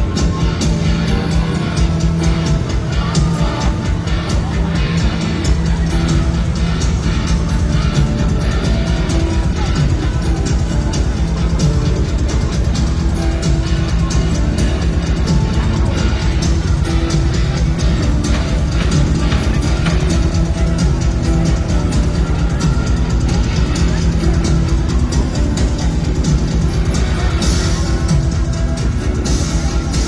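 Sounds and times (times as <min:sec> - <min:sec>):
live band playing loud music: 0:00.0 - 0:30.0
steady drum beat: 0:00.0 - 0:30.0.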